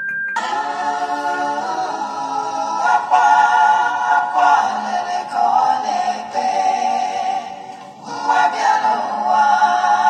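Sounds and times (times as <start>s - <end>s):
choir singing: 0.4s - 10.0s.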